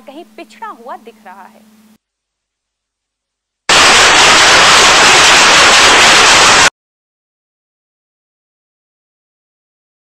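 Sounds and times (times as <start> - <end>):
loud static hiss: 0.0 - 6.7.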